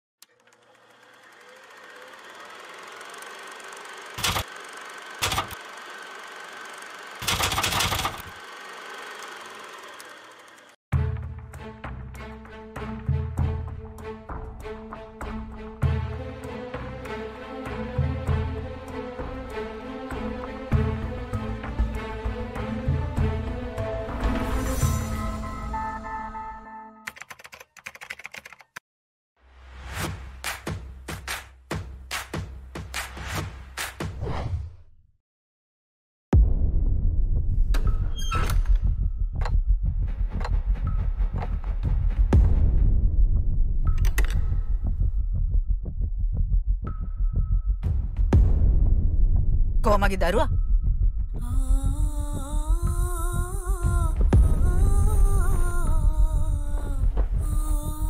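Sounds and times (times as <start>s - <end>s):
film camera mechanism whirring: 0.2s - 10.8s
rapid sharp clicks: 3.0s - 5.7s, 7.2s - 8.3s, 27.1s - 28.8s.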